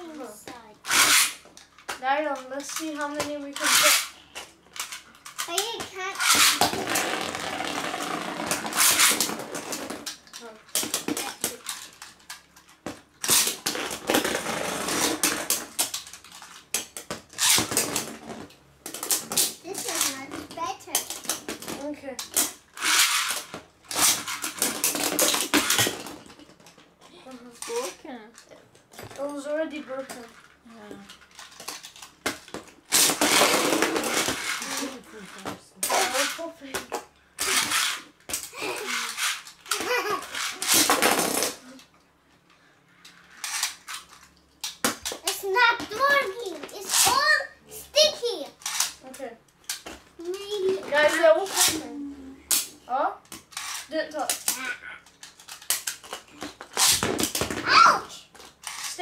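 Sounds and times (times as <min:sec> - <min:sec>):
spinning tops clashing and rattling: 0:37.4 - 0:41.7.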